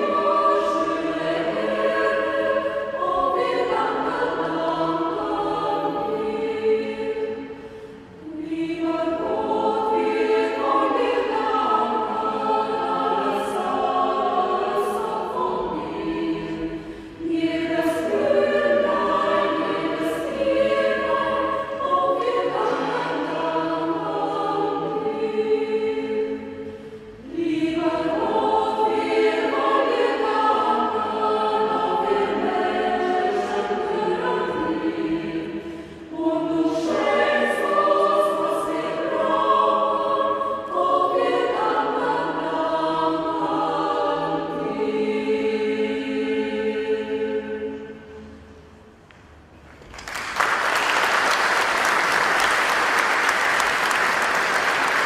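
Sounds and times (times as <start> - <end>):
mixed choir singing: 0.0 - 49.1, 50.1 - 55.0.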